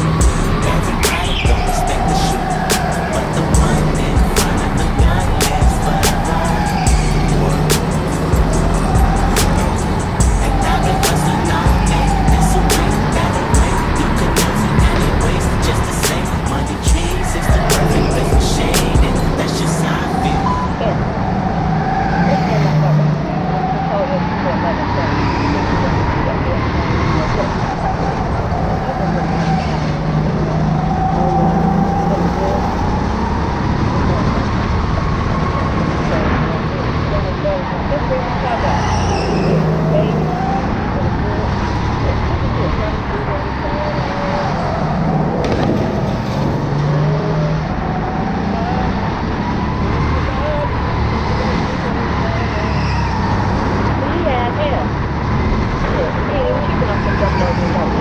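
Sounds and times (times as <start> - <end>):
chassis rattle: 0.0 - 20.4.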